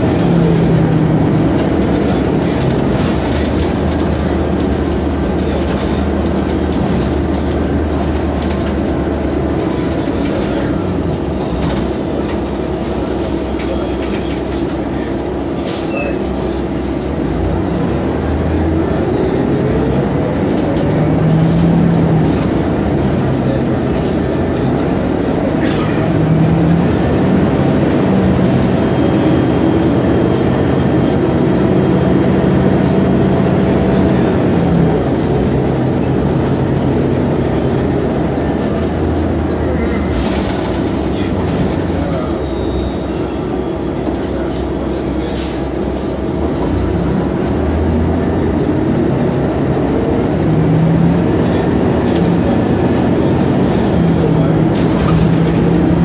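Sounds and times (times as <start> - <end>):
bus engine droning: 0.0 - 56.0.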